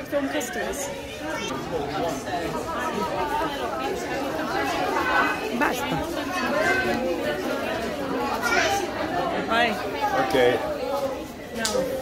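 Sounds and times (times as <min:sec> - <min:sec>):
chatter of several voices: 0:00.0 - 0:12.0.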